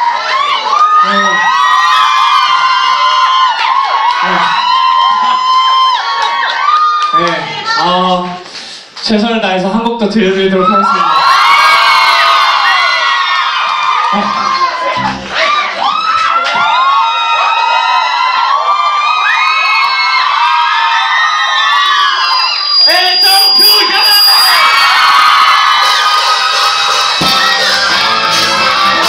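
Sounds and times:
audience cheering and screaming: 0.0s - 7.8s, 10.5s - 29.0s.

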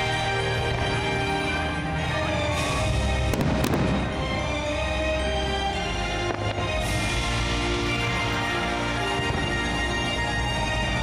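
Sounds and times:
music: 0.0s - 11.0s
fireworks rushing: 2.2s - 11.0s
sharp firework cracks: 3.3s - 4.4s.

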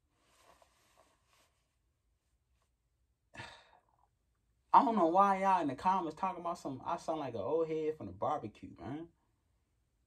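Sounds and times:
man exhaling breathily: 3.4s - 3.9s.

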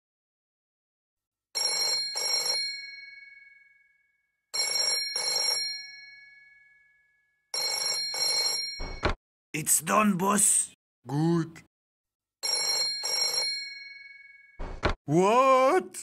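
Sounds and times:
desk telephone ringing: 1.6s - 3.8s, 4.5s - 6.6s, 7.5s - 9.2s, 12.4s - 14.6s.

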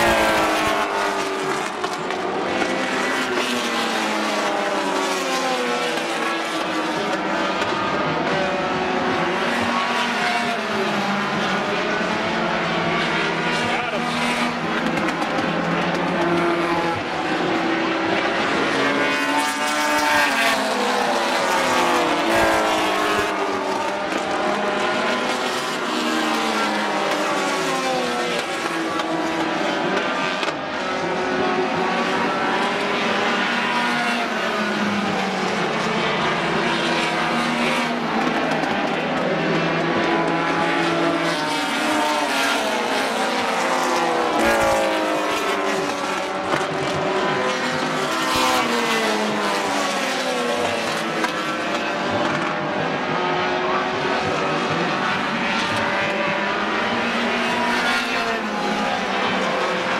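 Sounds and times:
stock cars racing: 0.0s - 59.9s.

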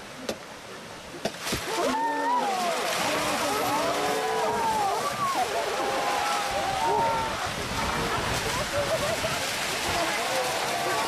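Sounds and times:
crowd exclaiming: 1.7s - 11.0s
water gushing from outlets: 1.9s - 11.0s.

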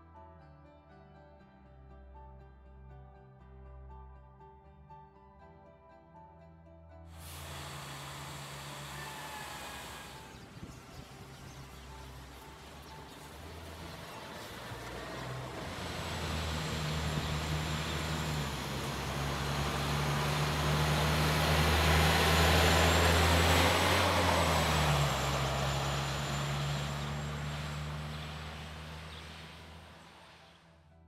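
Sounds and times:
bus driving past: 7.1s - 31.0s.

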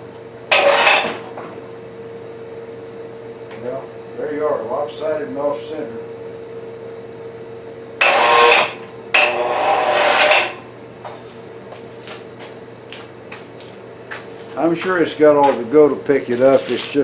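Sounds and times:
electric hoist motor running: 0.3s - 2.2s, 7.9s - 17.0s.

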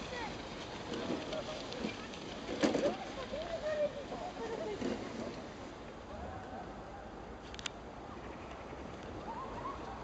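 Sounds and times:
children calling and shouting: 0.0s - 7.2s, 9.2s - 10.0s.

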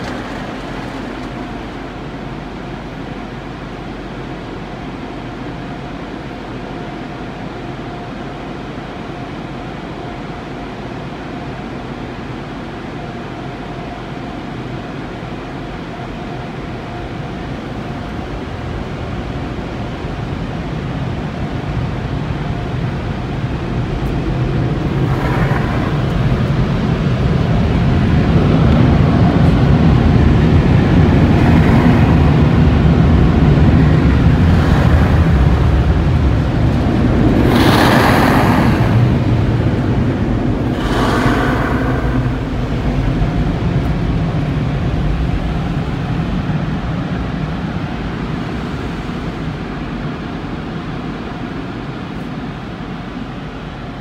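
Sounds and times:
car wash water spray rushing: 0.0s - 2.9s, 21.7s - 52.2s.

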